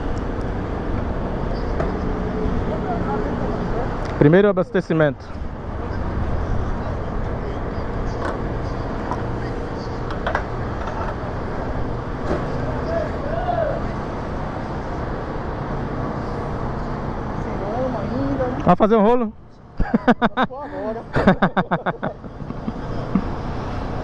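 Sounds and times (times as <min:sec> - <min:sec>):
faint voices: 0:02.0 - 0:11.1.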